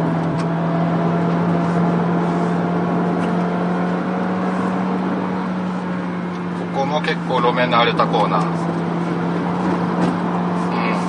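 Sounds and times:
car engine drone: 0.0 - 11.0
road and tyre noise: 0.0 - 11.0.

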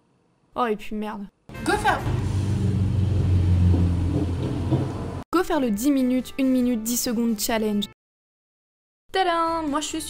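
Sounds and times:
car engine revving: 1.6 - 5.2.

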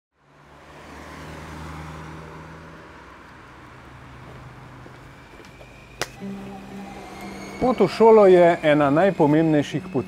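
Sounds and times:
road traffic engine hum: 0.1 - 10.0.

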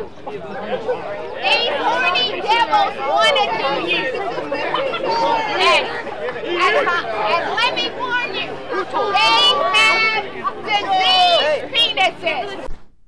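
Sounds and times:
crowd chatter: 0.0 - 12.7
woman preaching in raised voice: 7.3 - 12.5.

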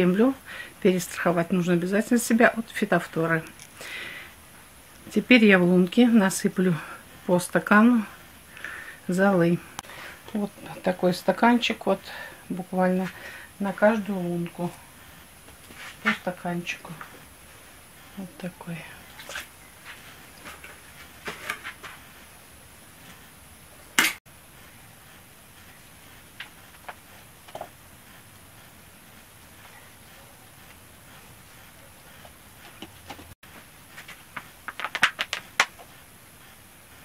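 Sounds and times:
plastic crinkling: 34.4 - 35.8.

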